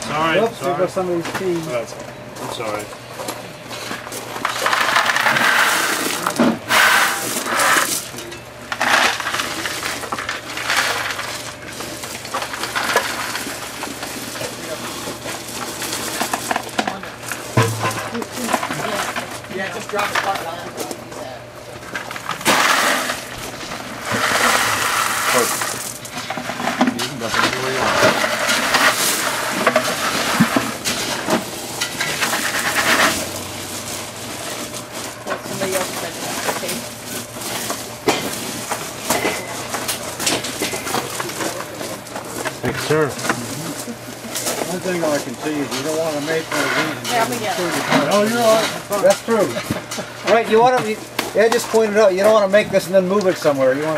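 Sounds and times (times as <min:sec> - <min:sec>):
gravel poured from buckets: 0:04.2 - 0:16.8, 0:22.0 - 0:39.0
gravel raked by hand: 0:04.4 - 0:08.1, 0:22.4 - 0:26.0.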